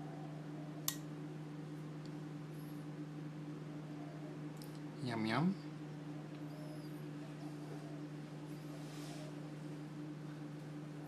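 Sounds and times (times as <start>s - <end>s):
two-tone low hum: 0.0s - 11.0s.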